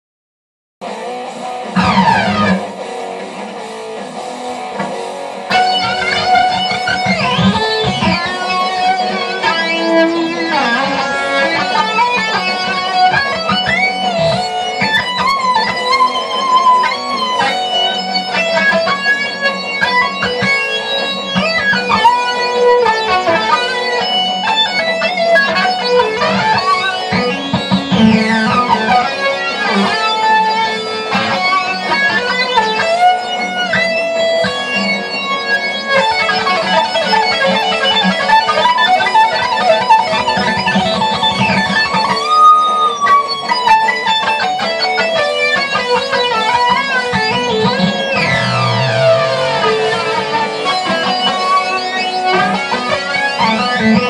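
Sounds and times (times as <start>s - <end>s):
electric guitar lead lines: 0.8s - 54.0s.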